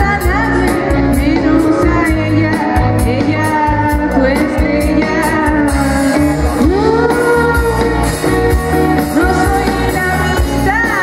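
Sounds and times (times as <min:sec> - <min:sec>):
amplified electric guitar: 0:00.0 - 0:11.0
live rock band playing: 0:00.0 - 0:11.0.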